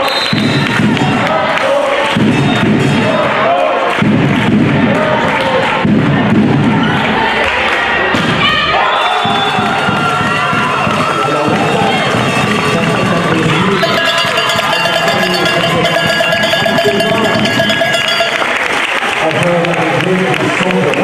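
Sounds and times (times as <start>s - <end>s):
crowd shouting and cheering: 0.0s - 21.0s
rapidly pulsing ringing: 13.8s - 18.7s.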